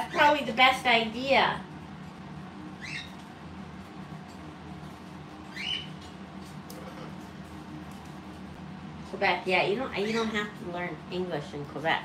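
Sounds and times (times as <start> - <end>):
parrot chirping: 2.8 - 3.2, 5.5 - 6.0, 9.9 - 10.4.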